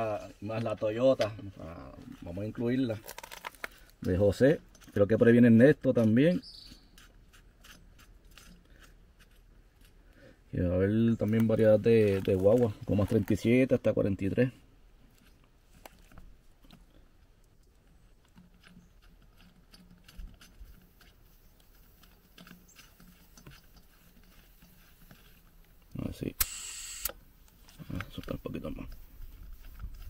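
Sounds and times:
hands handling air-hose fitting: 0:00.5 - 0:05.0, 0:11.1 - 0:13.6.

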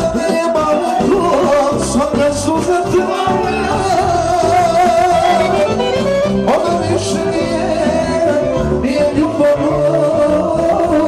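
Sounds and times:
live band dance music: 0:00.0 - 0:11.0
person singing: 0:00.0 - 0:11.0.

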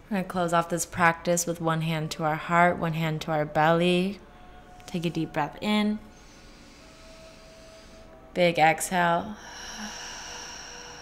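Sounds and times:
slow deep inhale: 0:06.1 - 0:08.3, 0:09.3 - 0:11.0.

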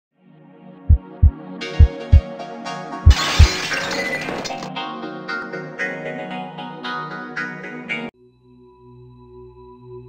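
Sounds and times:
deep bass thumps: 0:00.9 - 0:02.2.

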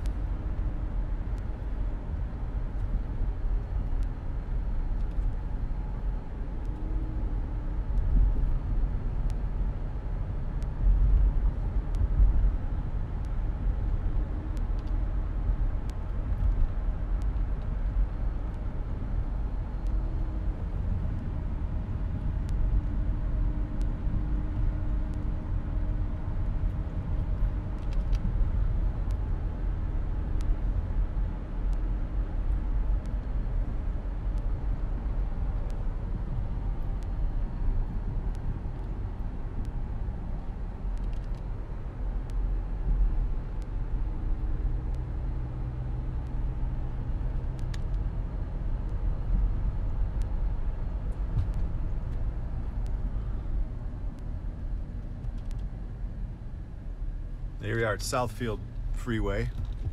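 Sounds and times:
car engine rumble: 0:00.0 - 0:59.9
tyre road noise: 0:00.0 - 0:59.9.

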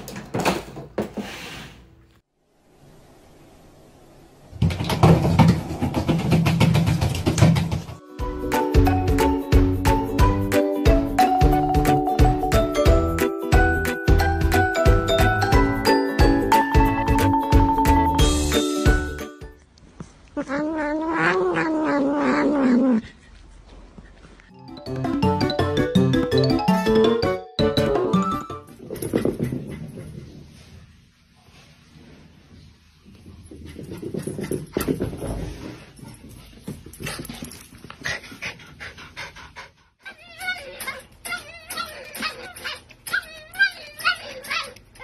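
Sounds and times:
dog panting: 0:33.6 - 0:40.3.

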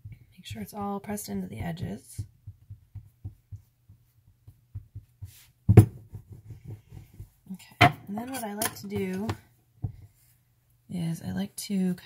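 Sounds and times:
rolling pin thumping on fondant: 0:01.7 - 0:08.0.

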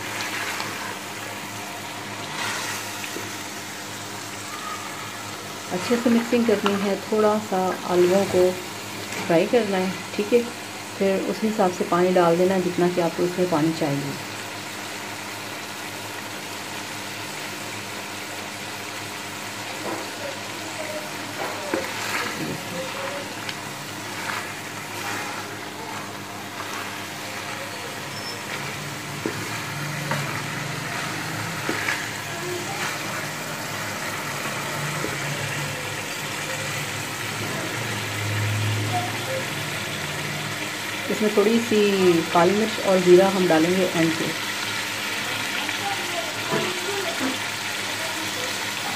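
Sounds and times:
potatoes and meat sizzling in a pot: 0:00.0 - 0:48.9
wooden spatula scraping a pan: 0:21.3 - 0:35.4.

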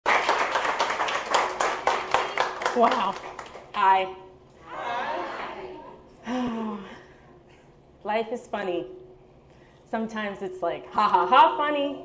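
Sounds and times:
audience clapping: 0:00.0 - 0:03.9.

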